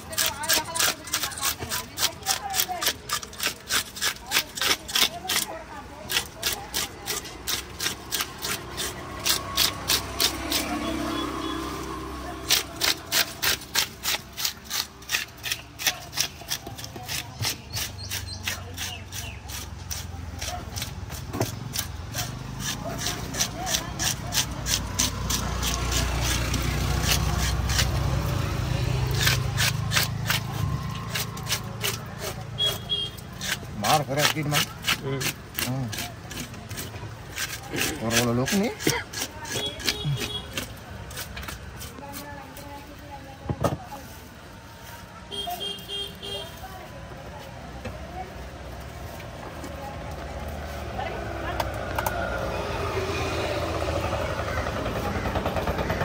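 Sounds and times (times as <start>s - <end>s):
knife scraping fish scales: 0.0s - 11.8s, 12.4s - 43.0s.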